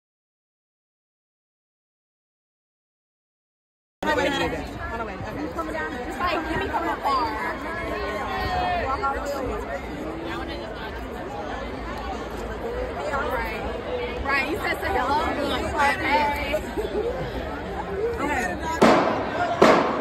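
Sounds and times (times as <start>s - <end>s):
crowd chatter and laughter: 4.0s - 20.0s
marching drum strikes: 18.8s - 20.0s.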